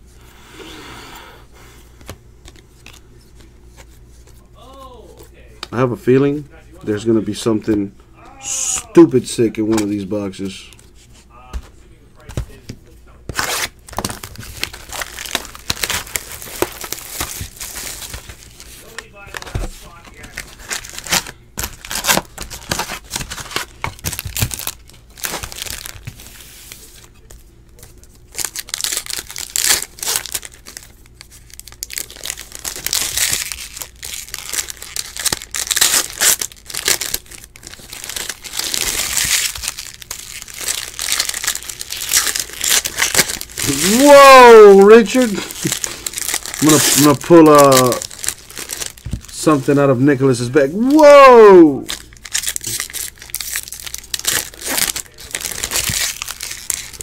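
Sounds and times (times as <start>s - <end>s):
foil wrappers torn and crinkled: 13.3s - 57.0s.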